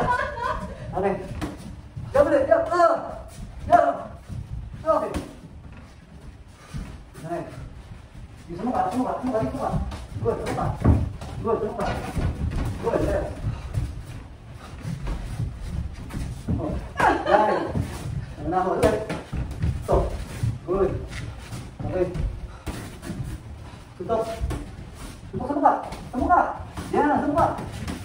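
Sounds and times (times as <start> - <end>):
feet moving on mat: 0.0 - 28.0.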